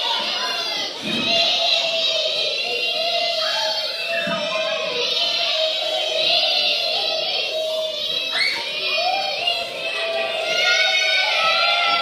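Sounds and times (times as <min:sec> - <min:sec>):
children singing: 0:00.0 - 0:12.0.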